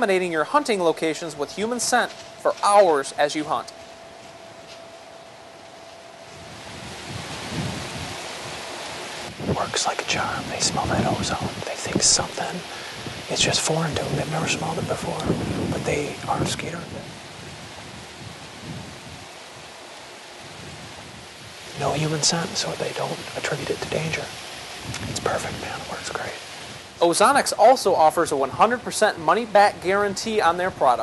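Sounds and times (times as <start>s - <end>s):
low rumbles: 0.0s - 30.9s
outdoor background hiss in woods: 0.0s - 31.0s
wind blowing on microphone: 0.0s - 31.0s.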